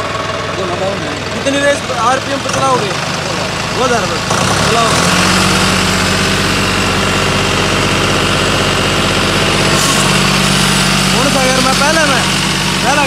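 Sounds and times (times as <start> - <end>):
tractor diesel engine droning: 0.0 - 13.0.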